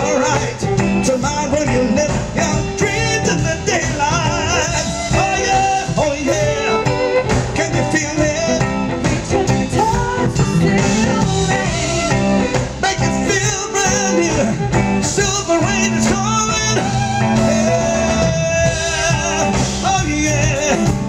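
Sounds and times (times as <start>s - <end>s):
bass line: 0.0s - 21.0s
electric guitar: 0.0s - 21.0s
man vocalising: 9.8s - 21.0s.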